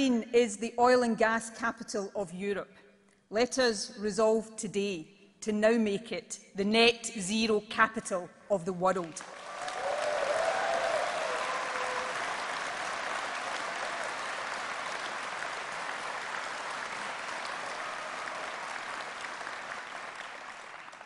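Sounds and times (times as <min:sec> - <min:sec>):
large audience applauding: 0:09.2 - 0:21.0.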